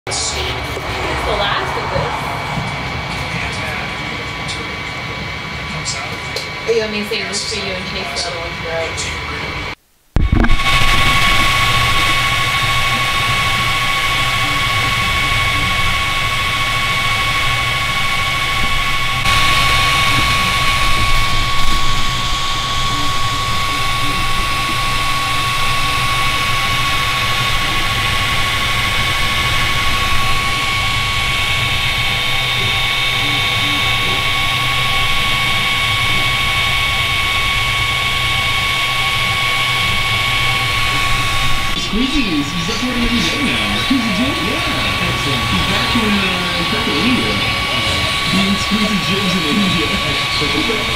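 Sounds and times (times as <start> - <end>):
three d printer whirring: 10.4 - 50.9.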